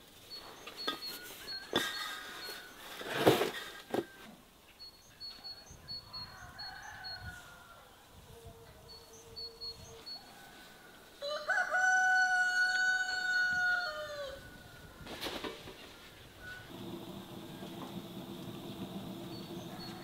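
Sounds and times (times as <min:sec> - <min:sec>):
small birds chirping: 0:00.0 - 0:03.0, 0:04.0 - 0:07.3, 0:15.8 - 0:20.0
rooster crowing: 0:06.0 - 0:08.7, 0:10.2 - 0:14.9, 0:16.5 - 0:20.0.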